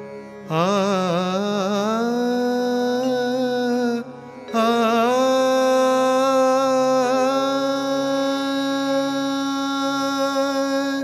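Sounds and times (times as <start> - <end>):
tanpura drone: 0.0 - 11.0
man singing: 0.4 - 11.0.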